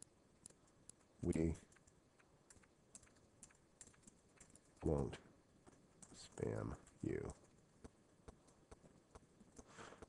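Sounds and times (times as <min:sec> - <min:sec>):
computer keyboard typing: 0:00.4 - 0:05.0.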